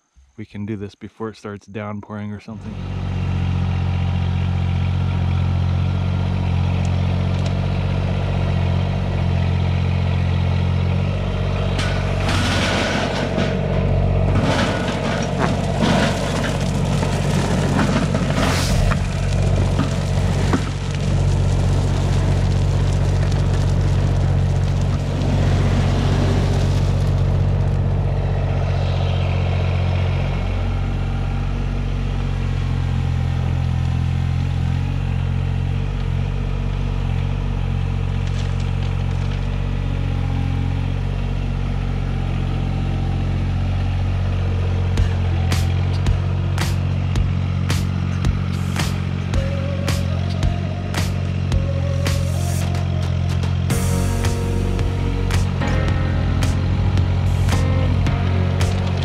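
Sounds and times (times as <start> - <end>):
tractor diesel engine running: 2.3 - 59.0
gravel pouring and rattling: 10.0 - 30.2, 37.9 - 40.6, 42.2 - 59.0.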